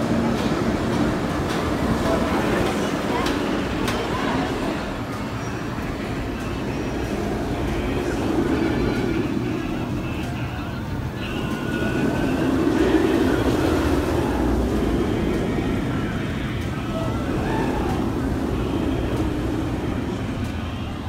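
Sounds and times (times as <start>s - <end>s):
roller coaster rumbling roar: 0.0s - 21.0s.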